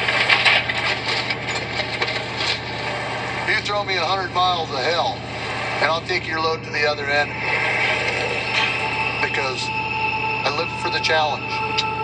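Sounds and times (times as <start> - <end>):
truck engine drone: 0.0 - 12.0.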